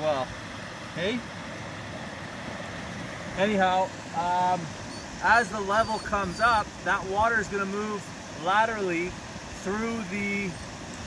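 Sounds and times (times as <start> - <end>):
creek water rushing through sticks: 0.0 - 11.0.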